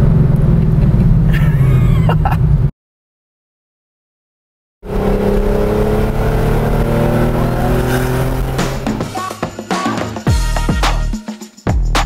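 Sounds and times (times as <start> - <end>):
car engine running: 0.0 - 2.7, 4.9 - 9.2
music with sharp beats: 8.4 - 12.0.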